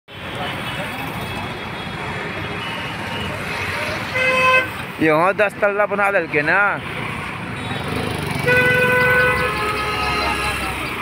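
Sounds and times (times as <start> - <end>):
cars passing: 0.1 - 11.0
motorcycles passing: 0.2 - 11.0.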